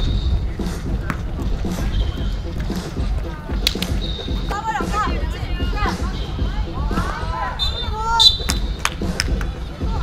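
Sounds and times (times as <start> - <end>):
players' voices: 0.4 - 10.0.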